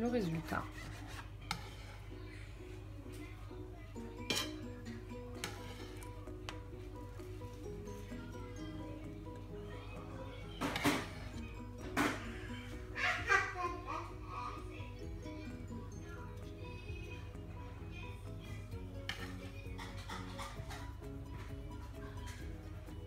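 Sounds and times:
soft background music: 0.0 - 23.0
knife and plates clinking: 4.2 - 6.1, 19.0 - 21.0.

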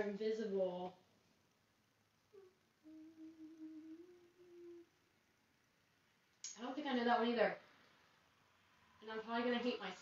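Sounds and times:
woman humming: 2.3 - 5.0.

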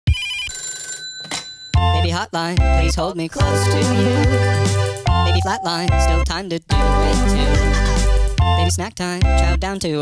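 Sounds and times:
telephone ringing: 0.1 - 2.0
sped-up pop song: 2.1 - 8.4.

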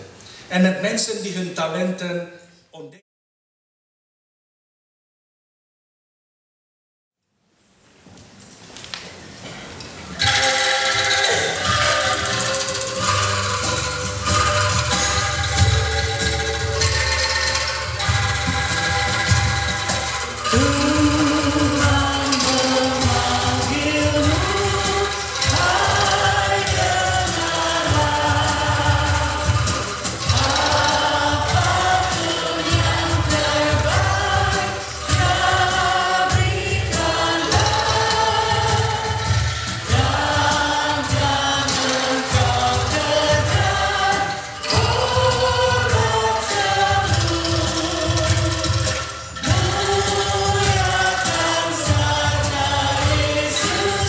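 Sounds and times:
angklung ensemble: 9.5 - 54.0
choir singing: 10.2 - 54.0
women singing a hymn: 20.5 - 48.7, 49.4 - 54.0.

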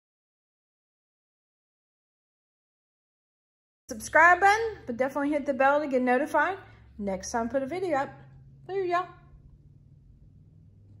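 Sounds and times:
low steady hum: 3.9 - 11.0.

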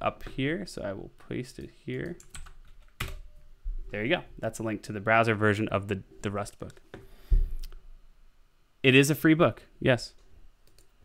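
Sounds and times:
man speaking: 0.0 - 2.2, 3.9 - 6.8, 8.8 - 10.2.

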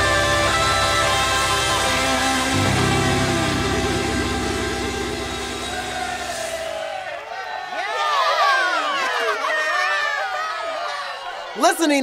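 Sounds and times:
rock band ringing chord: 0.0 - 6.8.

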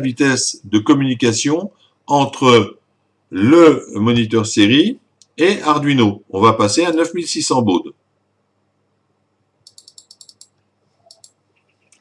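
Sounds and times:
computer mouse clicks: 9.6 - 12.0.

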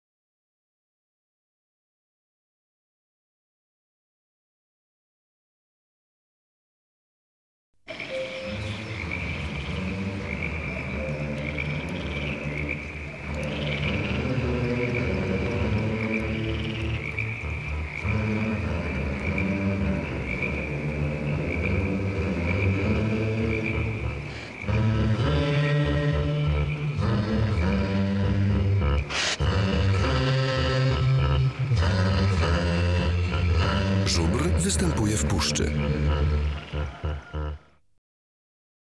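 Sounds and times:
frogs croaking: 7.9 - 37.8.

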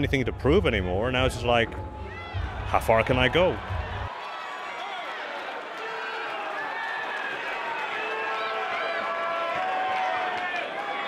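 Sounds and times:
crowd cheering and shouting: 0.0 - 11.0.

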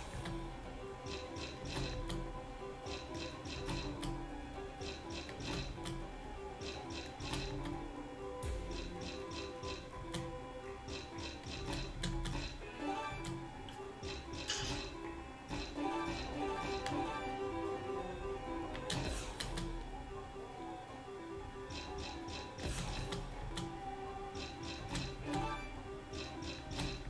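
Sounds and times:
slot game background music: 0.0 - 27.0.

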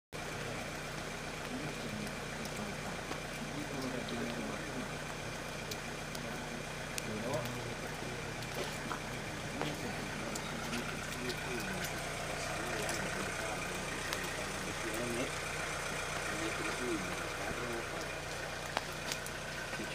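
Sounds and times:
low hum: 0.2 - 19.9
steady rain falling: 0.2 - 19.9
water dripping: 0.2 - 19.9
faint voices murmuring: 1.4 - 19.9.

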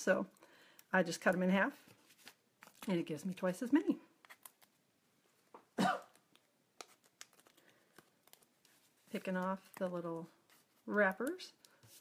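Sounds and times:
faint clicks of small items: 0.3 - 3.0, 5.4 - 12.0
woman coughing: 5.8 - 6.2.

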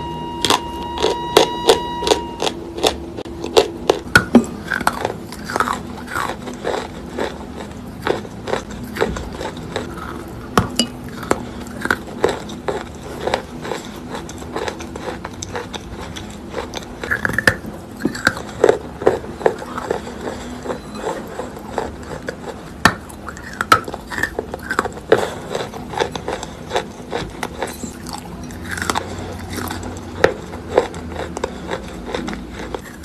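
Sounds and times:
chewing crunchy chalk: 2.4 - 33.0.

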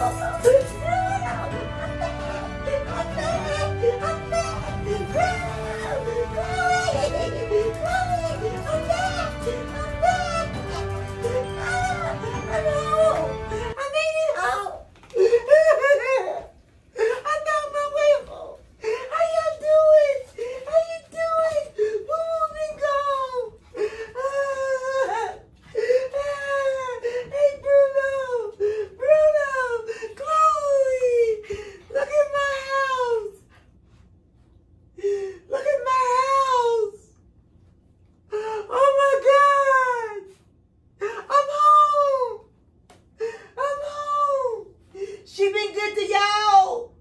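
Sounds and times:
woman wailing: 0.0 - 33.4.

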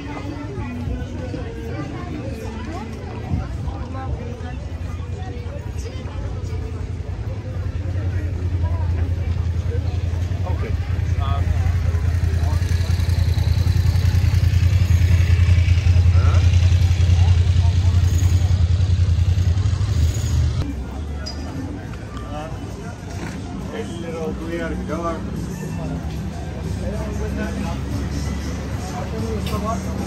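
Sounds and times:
voices of passers-by: 0.0 - 30.0.

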